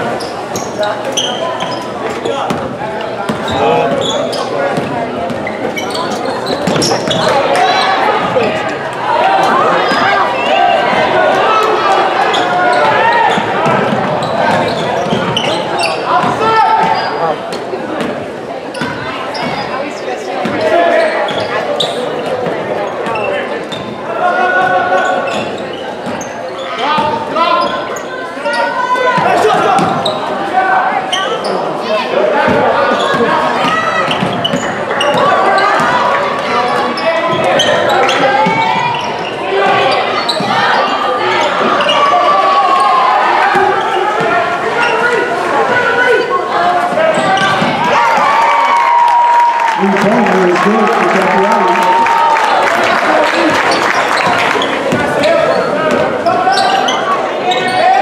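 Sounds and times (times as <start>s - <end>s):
many overlapping voices: 0.0s - 58.0s.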